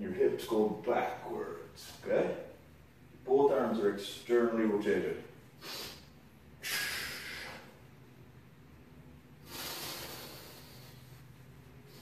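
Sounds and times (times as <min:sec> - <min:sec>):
man breathing: 0:05.6 - 0:07.9, 0:09.4 - 0:12.0.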